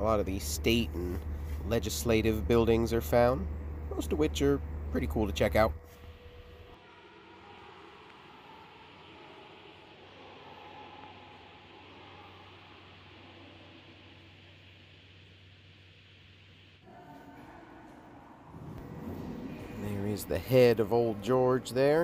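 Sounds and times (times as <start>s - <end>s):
soft steady hiss: 0.0s - 17.6s
low steady hum: 0.0s - 22.0s.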